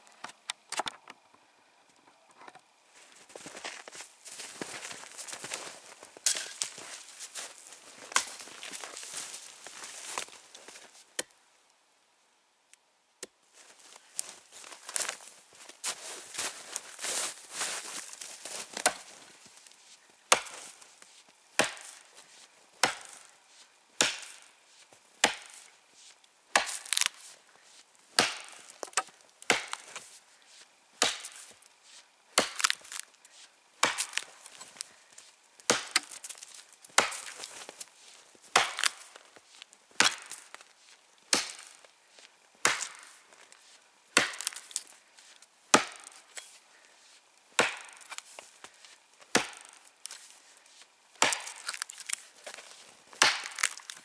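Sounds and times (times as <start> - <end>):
axe chopping into tree: 18.8 - 19.1, 20.3 - 20.7, 21.6 - 22.0, 22.8 - 23.3, 24.0 - 24.5, 25.2 - 25.6, 26.5 - 27.2, 28.2 - 30.0, 31.0 - 31.5, 32.4 - 33.0, 33.8 - 34.8, 35.7 - 36.4, 37.0 - 37.5, 38.5 - 39.0, 40.0 - 40.5, 41.3 - 41.8, 42.6 - 43.1, 44.2 - 44.8, 45.7 - 46.4, 47.6 - 48.2, 49.3 - 49.8, 51.2 - 52.2, 53.2 - 54.0.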